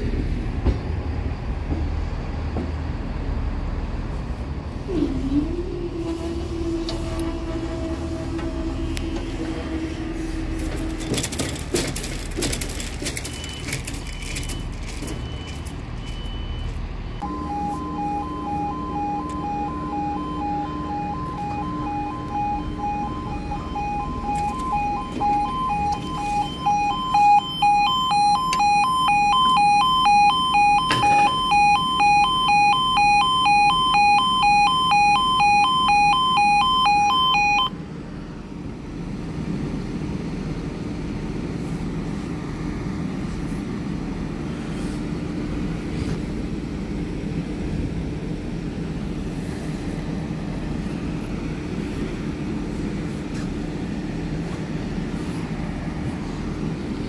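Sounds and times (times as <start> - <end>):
low rumble of approaching train: 0.0 - 27.1, 37.7 - 57.0
level crossing alarm warbling: 13.2 - 37.8.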